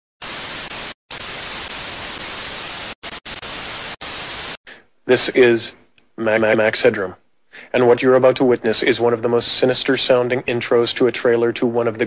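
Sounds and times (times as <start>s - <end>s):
tv static hiss: 0.2s - 7.1s.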